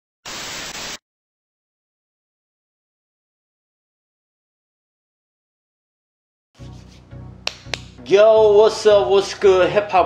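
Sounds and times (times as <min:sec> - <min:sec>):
static hiss burst: 0:00.2 - 0:01.0.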